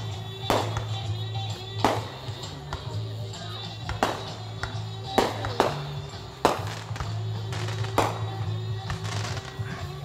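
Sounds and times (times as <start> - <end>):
background music: 0.0 - 10.0
firework shells bursting: 3.9 - 9.6.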